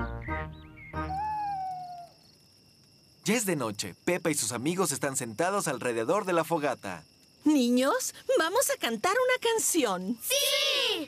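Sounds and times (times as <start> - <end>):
cartoon owl hoot: 0.9 - 2.2.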